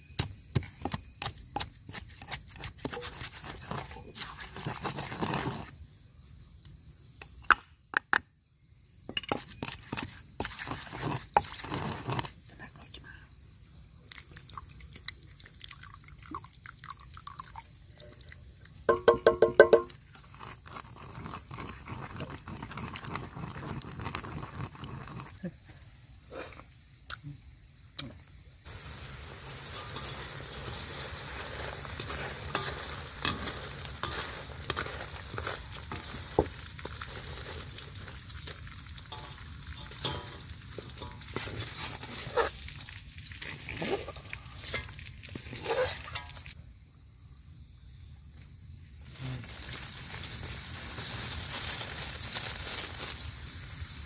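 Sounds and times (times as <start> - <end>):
high insect drone: 0.0 - 54.0
pestle grinding in a mortar: 0.2 - 5.7, 18.9 - 25.3
beetles frying in oil: 9.6 - 12.3, 28.6 - 46.6, 49.0 - 54.0.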